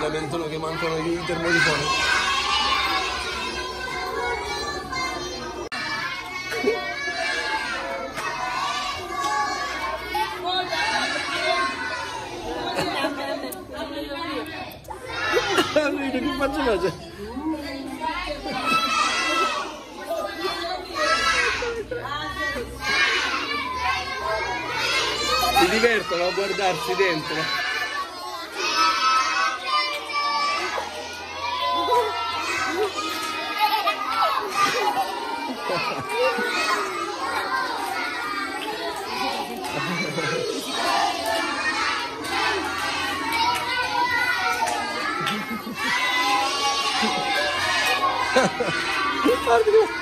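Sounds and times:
children chattering: 0:00.0 - 0:50.0.

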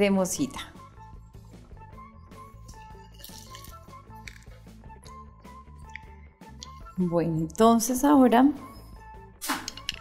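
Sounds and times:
soft instrumental music: 0:00.0 - 0:10.0.

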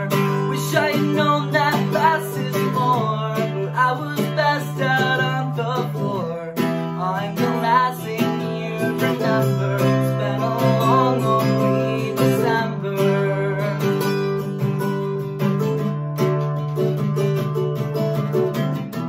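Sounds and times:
man singing: 0:00.0 - 0:14.6
acoustic guitar strumming chords: 0:00.0 - 0:19.0.

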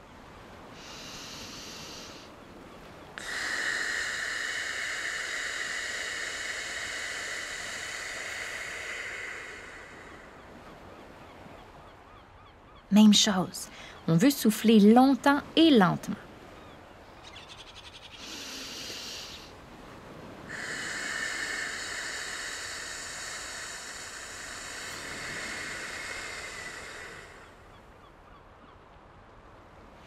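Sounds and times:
slow hissing exhalation: 0:00.7 - 0:02.4, 0:03.2 - 0:10.8, 0:18.2 - 0:19.6, 0:20.4 - 0:27.9
woman breathing in through nose: 0:00.8 - 0:02.3, 0:03.2 - 0:10.5, 0:18.2 - 0:19.5, 0:20.5 - 0:27.7.

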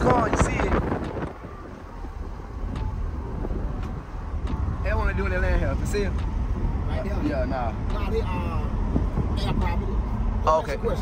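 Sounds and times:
car engine and tyre rumble: 0:00.0 - 0:11.0
wind noise: 0:00.0 - 0:11.0.

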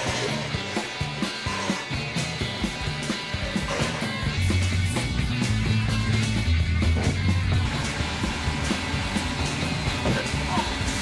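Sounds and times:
rock music: 0:00.0 - 0:11.0.

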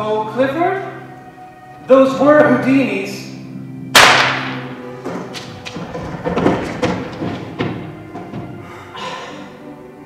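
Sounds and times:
sharp ringing crack: 0:04.0 - 0:04.8.

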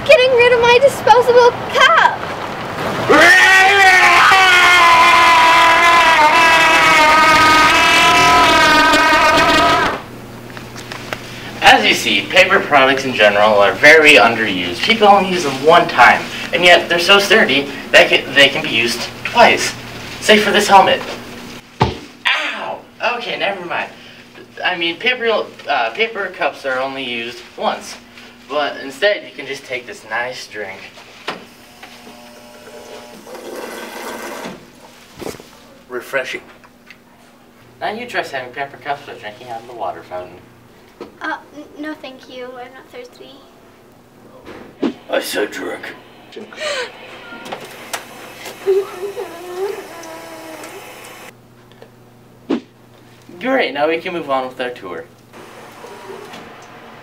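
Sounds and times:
steady hum: 0:03.0 - 0:57.0
water running: 0:32.6 - 0:34.6, 0:45.1 - 0:51.3.

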